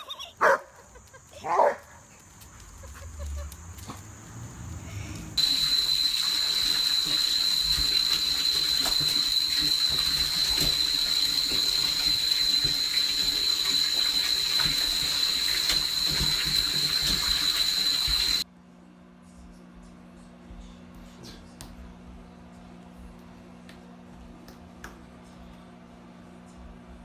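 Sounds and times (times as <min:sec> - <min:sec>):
tap water running into bathtub: 0:05.4 - 0:18.4.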